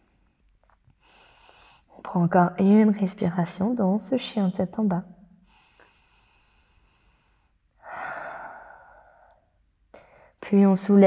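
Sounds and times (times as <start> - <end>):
woman breathing deeply: 1.0 - 1.9, 5.4 - 10.4.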